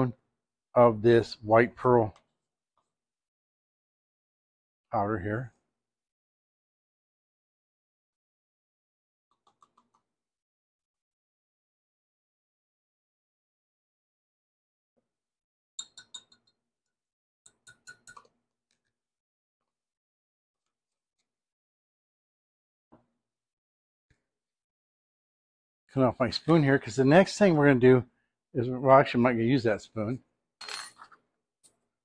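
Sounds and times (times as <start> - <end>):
metal spoon clinking on glass: 15.8 - 16.6, 17.5 - 18.3
metal measuring spoons clinking: 30.6 - 31.1.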